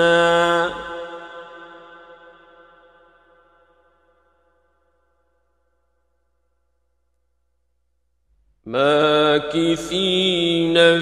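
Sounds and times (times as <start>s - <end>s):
man chanting with long echo: 0.0s - 2.8s, 8.7s - 11.0s.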